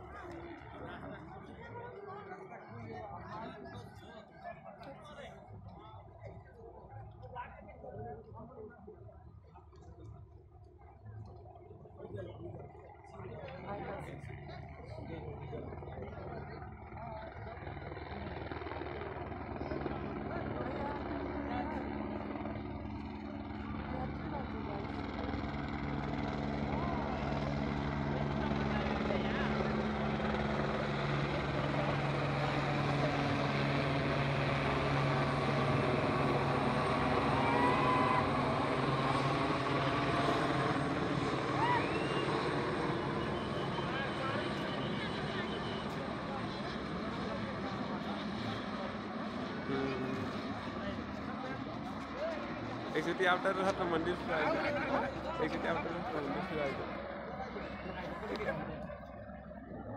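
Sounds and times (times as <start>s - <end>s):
helicopter flying low overhead: 0.0s - 59.9s
voices: 0.0s - 59.9s.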